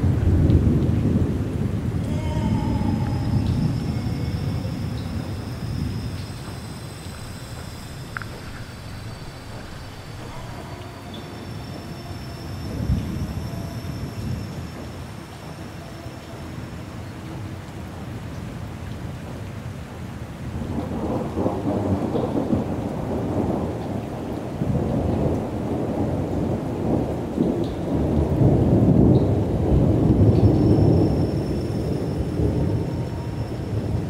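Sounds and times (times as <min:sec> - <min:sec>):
deep thunder-like rumble: 0:00.0 - 0:15.8.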